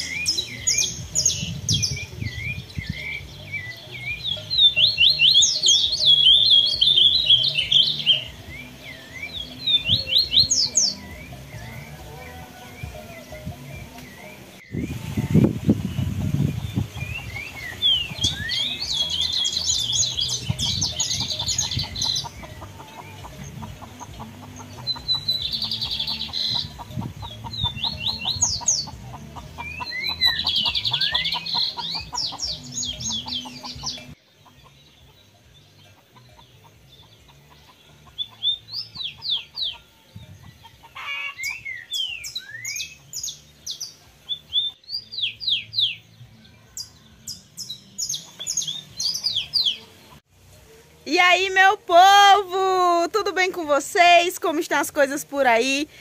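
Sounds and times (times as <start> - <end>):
chickens clucking: 0.0 - 44.8, 47.6 - 50.3
small birds chirping: 0.0 - 56.0.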